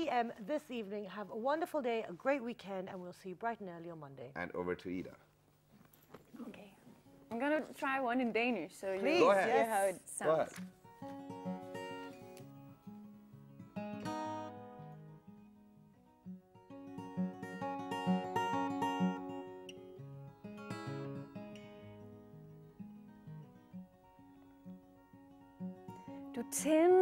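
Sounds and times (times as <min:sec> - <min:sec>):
fingerpicked acoustic guitar: 0:06.5 - 0:27.0.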